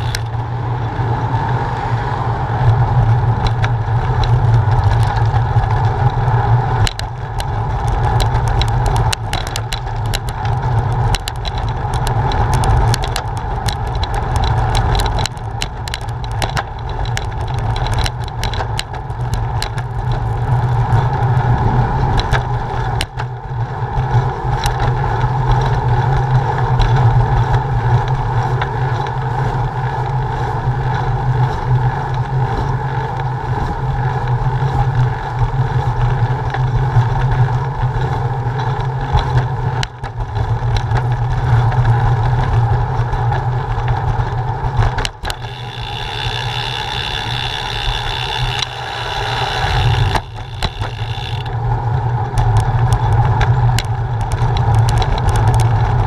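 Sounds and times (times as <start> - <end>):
bicycle tyres rolling on asphalt: 0.0 - 56.0
wind rush: 20.3 - 24.5
bike knocking over bumps: 44.8 - 51.5.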